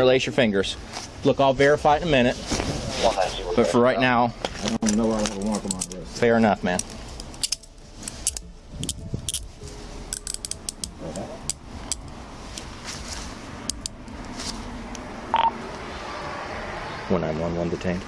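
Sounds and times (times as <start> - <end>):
handcuffs ratcheting clicks: 5.3 - 6.0, 6.8 - 9.5, 10.1 - 12.7, 13.7 - 14.0
short beep: 15.3 - 15.6.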